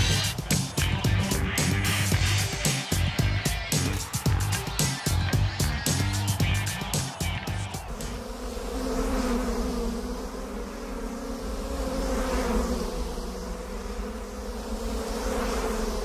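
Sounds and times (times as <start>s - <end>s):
hornet buzzing: 0.0s - 9.4s.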